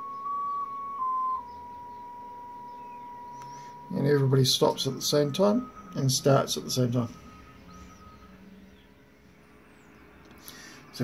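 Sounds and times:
background hiss and hum: 0.0 - 11.0
faint steady tone: 0.0 - 11.0.

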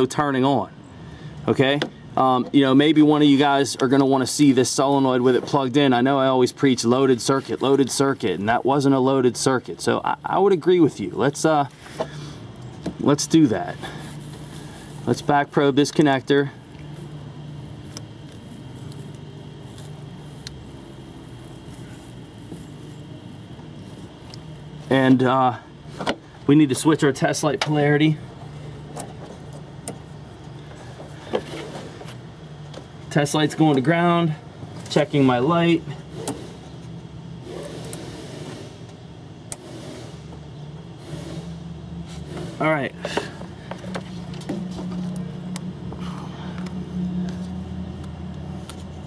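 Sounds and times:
low mechanical hum: 0.0 - 49.0
vehicle engine idling: 0.0 - 49.0.

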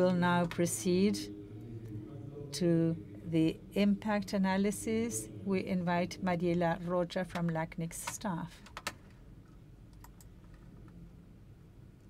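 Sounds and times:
room hum: 0.0 - 12.0
laptop keyboard typing: 8.0 - 9.0, 9.9 - 10.6.

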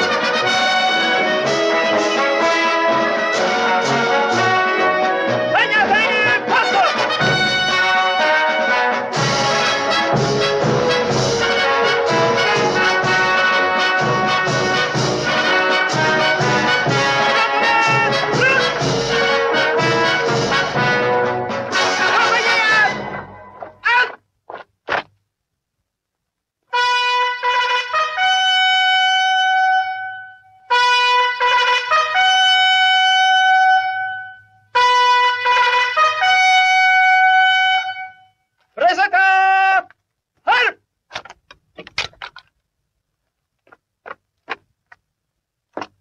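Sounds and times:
bugle call: 0.0 - 24.2, 26.7 - 38.7.

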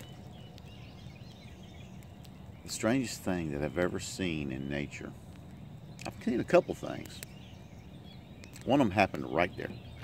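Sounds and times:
distant birds chirping: 0.0 - 10.0
low background rumble: 0.0 - 10.0.

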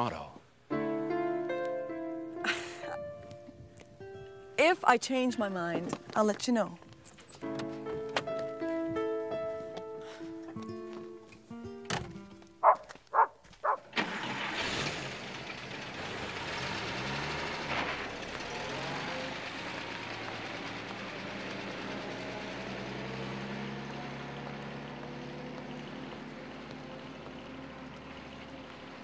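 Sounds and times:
car engine starting and pulling away: 5.4 - 29.0.

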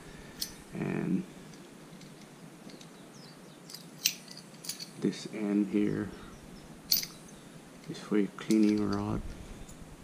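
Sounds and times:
metal tool click: 6.9 - 7.2.

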